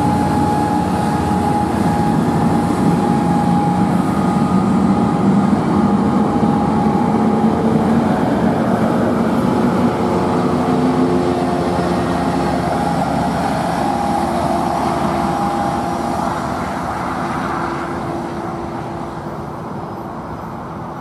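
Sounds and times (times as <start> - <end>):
train rumbling past: 0.0 - 21.0.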